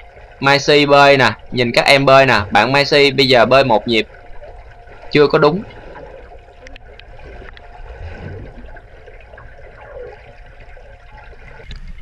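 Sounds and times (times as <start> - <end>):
underwater pool water wash: 0.0 - 12.0
swimmers kicking swishes: 2.0 - 12.0.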